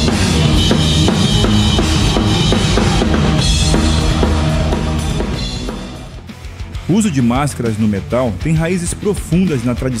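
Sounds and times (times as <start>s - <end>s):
band low end: 0.0s - 8.7s
heavy metal drum kit: 0.0s - 10.0s.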